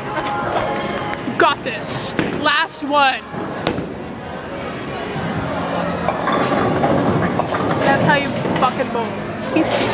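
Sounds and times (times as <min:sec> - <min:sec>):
bowling ball rolling: 0:03.3 - 0:09.9.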